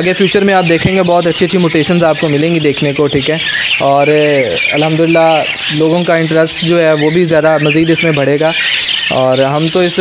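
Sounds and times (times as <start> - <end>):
man talking: 0.0 - 10.0
parrots chattering and chirping: 0.0 - 10.0.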